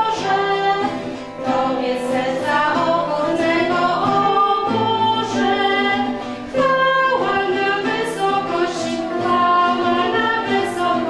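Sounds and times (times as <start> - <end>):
classical guitar: 0.0 - 11.0
electronic keyboard: 0.0 - 11.0
voices singing a carol: 0.0 - 11.0.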